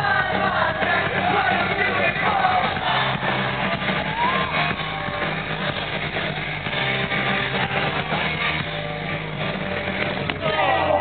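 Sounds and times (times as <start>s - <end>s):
bass guitar: 0.0s - 11.0s
live rock band: 0.0s - 11.0s.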